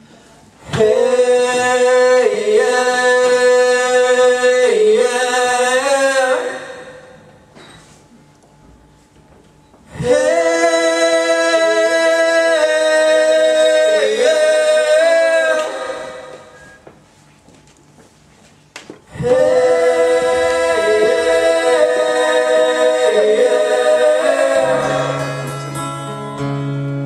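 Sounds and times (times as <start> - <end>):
person singing wordless notes: 10.0 - 16.6, 19.1 - 25.9.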